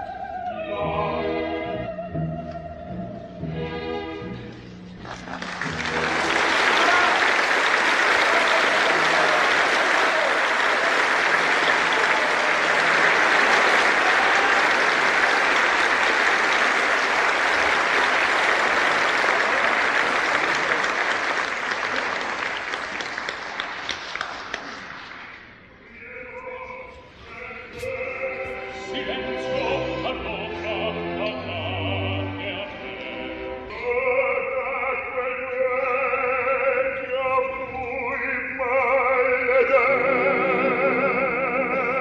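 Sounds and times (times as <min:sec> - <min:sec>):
person singing: 0:00.0 - 0:03.9, 0:25.9 - 0:42.0
audience applauding: 0:05.0 - 0:25.6.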